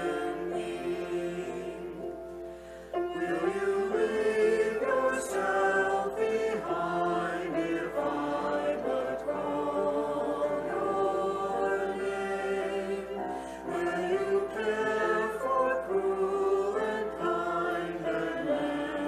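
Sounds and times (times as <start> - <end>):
choir and congregation singing hymn: 0.0 - 19.0.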